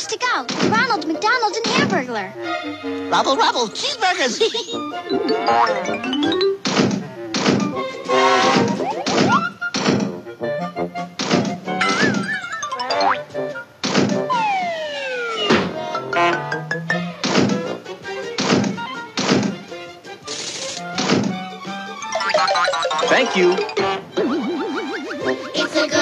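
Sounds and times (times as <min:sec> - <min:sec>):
bouncy comedy music: 0:00.0 - 0:26.0
sharp knocks and thunks: 0:00.5 - 0:00.9, 0:06.6 - 0:07.8, 0:08.4 - 0:10.2, 0:11.2 - 0:12.3, 0:13.8 - 0:14.4, 0:15.5 - 0:15.8, 0:17.2 - 0:19.7, 0:21.0 - 0:21.5
springy boing notes: 0:11.8 - 0:13.4, 0:15.4 - 0:17.7, 0:22.1 - 0:25.2
wavering tone: 0:22.0 - 0:25.8.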